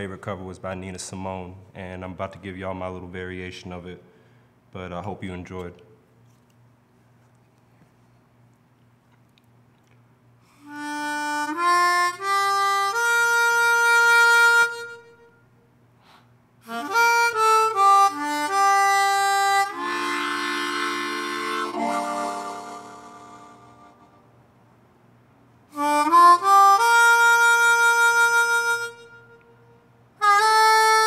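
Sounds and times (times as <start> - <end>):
harmonica long note: 10.6 - 24.3, 25.7 - 31.0.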